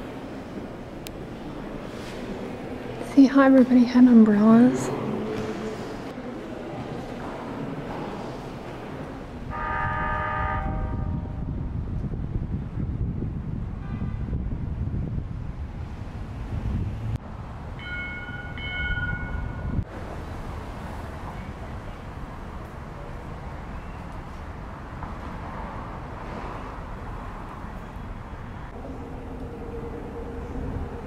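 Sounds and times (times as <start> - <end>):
horn-like tone: 9.5 - 11.4.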